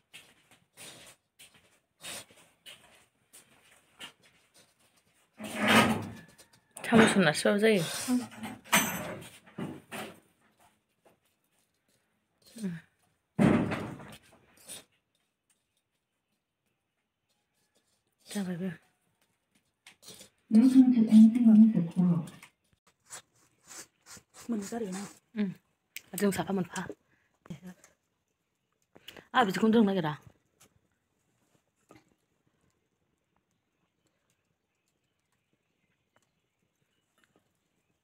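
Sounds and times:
cloth scraping iron pan: 0:05.4 - 0:06.1
person speaking: 0:23.6 - 0:26.9.

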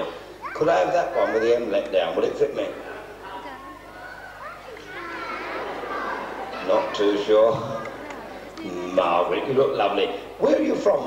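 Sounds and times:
children calling out: 0:00.0 - 0:01.7, 0:03.5 - 0:09.0.

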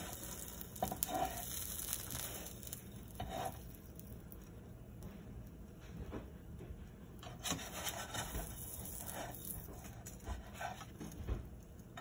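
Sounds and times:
spatula scraping frying pan: 0:00.0 - 0:04.0, 0:07.3 - 0:10.8.

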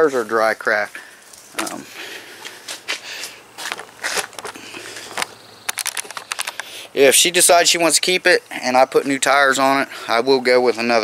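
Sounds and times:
camera handling rustle: 0:03.6 - 0:06.8.

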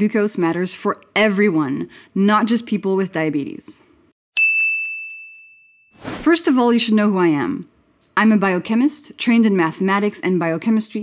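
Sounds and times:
bell-like ding: 0:04.4 - 0:06.0.

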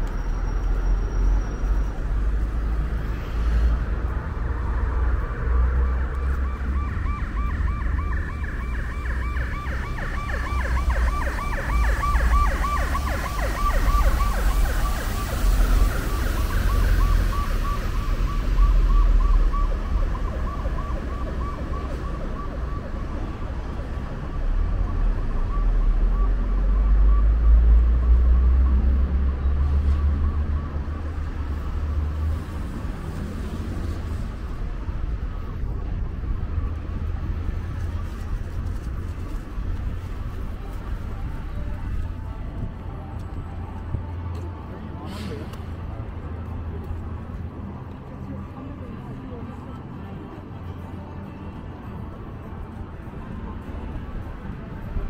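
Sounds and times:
low rumble of street traffic: 0:00.0 - 0:55.0
emergency siren warbling: 0:05.7 - 0:32.4.

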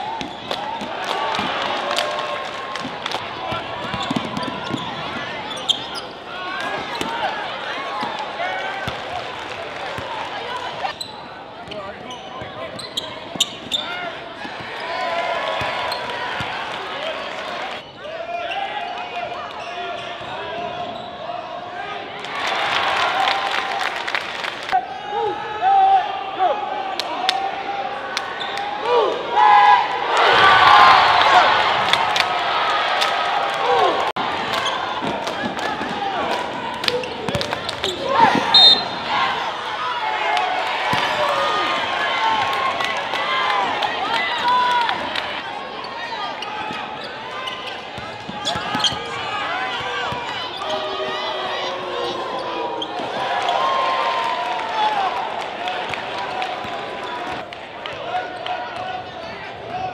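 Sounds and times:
crowd voices and shouting: 0:00.0 - 0:59.9.

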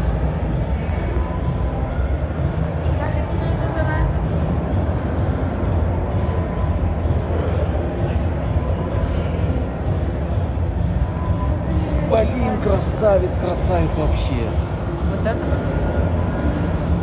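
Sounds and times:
faint distant voices: 0:00.0 - 0:17.0
low rumble of hall background: 0:00.0 - 0:17.0.

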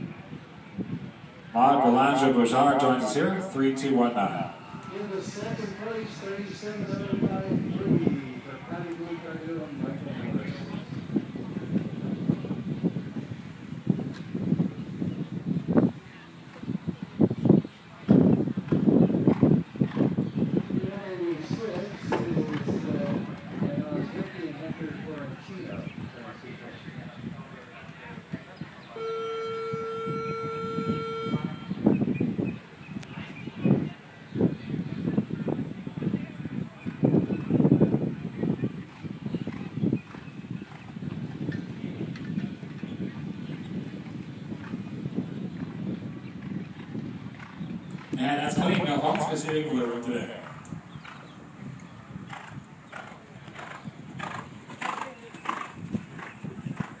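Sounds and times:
outdoor background noise: 0:00.0 - 0:57.0
horse hooves on soft sand: 0:04.8 - 0:26.7, 0:38.2 - 0:57.0
buzzy horn tone: 0:29.0 - 0:31.8.

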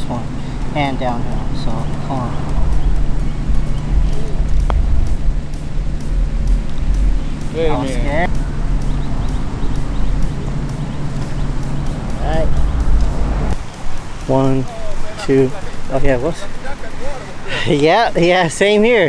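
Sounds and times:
steady low hum: 0:00.0 - 0:17.7
wind buffeting microphone: 0:00.0 - 0:18.4
putter striking golf ball: 0:01.9 - 0:07.6.

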